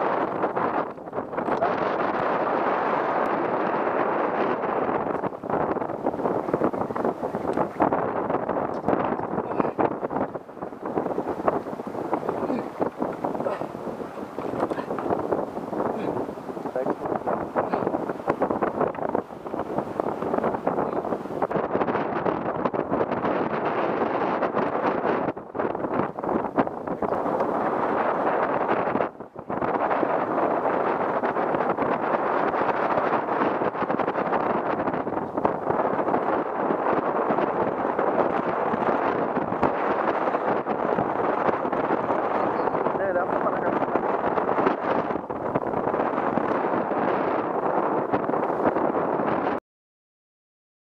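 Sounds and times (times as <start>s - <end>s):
wind buffeting microphone: 0.0s - 49.6s.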